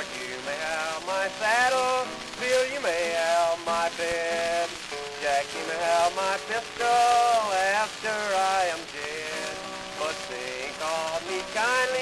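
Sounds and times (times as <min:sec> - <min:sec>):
acoustic guitar: 0:00.0 - 0:12.0
man singing a cowboy ballad: 0:00.0 - 0:12.0
record surface hiss and crackle: 0:00.0 - 0:12.0.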